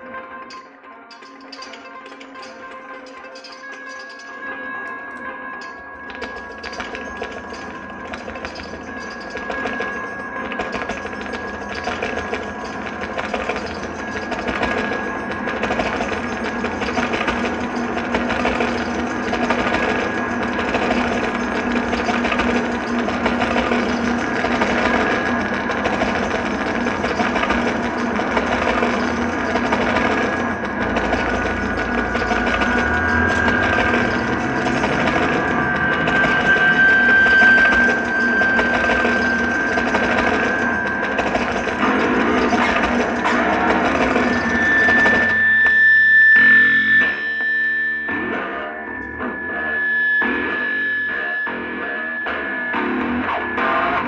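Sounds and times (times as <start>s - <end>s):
layered guitar drone: 4.4s - 54.0s
fast machine-like pulse: 6.2s - 45.7s.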